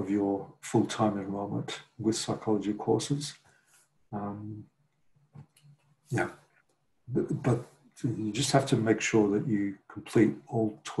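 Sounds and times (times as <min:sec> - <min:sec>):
faint short sound: 0:04.2 - 0:04.6.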